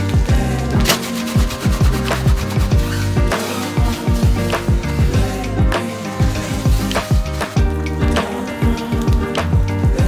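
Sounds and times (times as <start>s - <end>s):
bass drum thumps: 0.1s - 10.0s.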